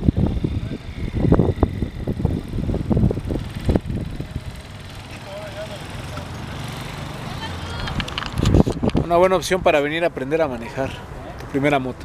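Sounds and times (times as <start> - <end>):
voices: 3.4 - 12.0.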